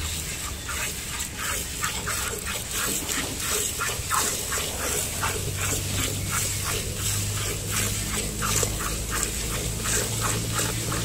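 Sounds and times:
milk squirting into bucket: 0.0 - 11.0.

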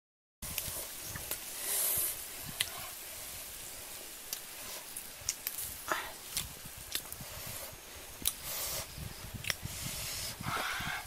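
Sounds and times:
wood fire crackling and popping: 0.4 - 7.4.

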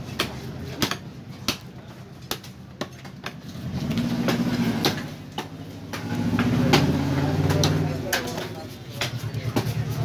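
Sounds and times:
engine hum: 2.8 - 10.0.

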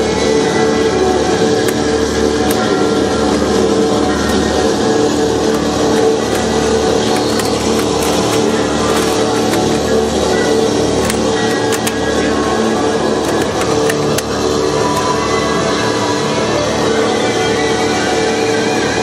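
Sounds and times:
sharp clicks and rattles: 1.2 - 15.3.

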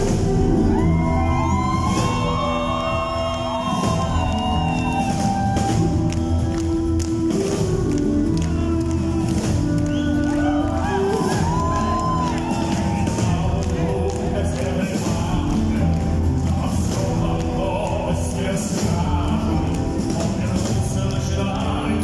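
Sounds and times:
drums: 0.0 - 22.0.

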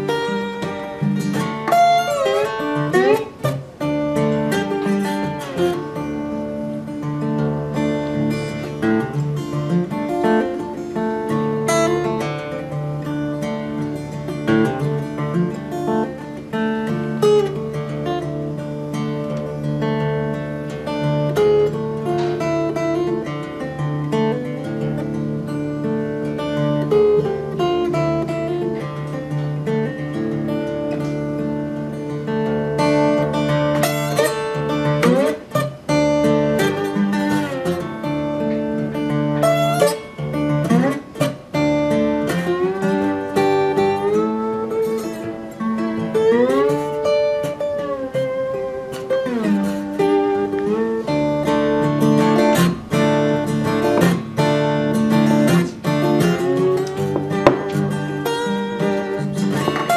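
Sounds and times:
fingerstyle acoustic guitar: 0.0 - 59.9.

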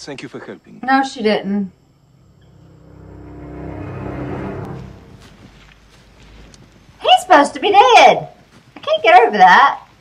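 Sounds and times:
low held orchestral chord: 2.1 - 5.8.

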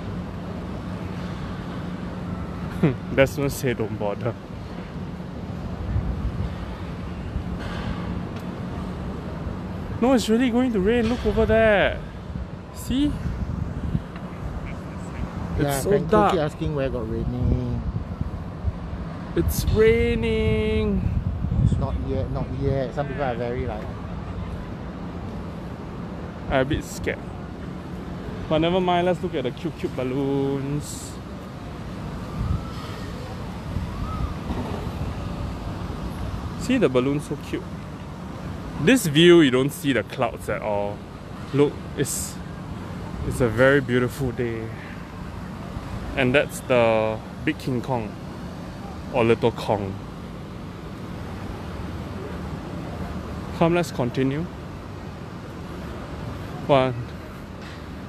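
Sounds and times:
wind buffeting microphone: 5.8 - 6.6, 11.2 - 16.2, 17.2 - 22.8, 32.3 - 36.6.

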